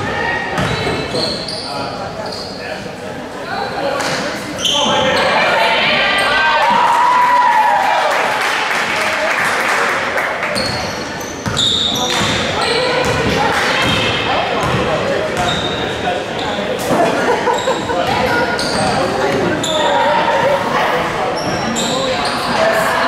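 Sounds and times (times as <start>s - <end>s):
shouts and chatter echoing: 0.0s - 23.0s
sneakers squeaking on court: 0.5s - 2.6s, 10.6s - 16.8s, 17.5s - 20.5s, 21.3s - 22.6s.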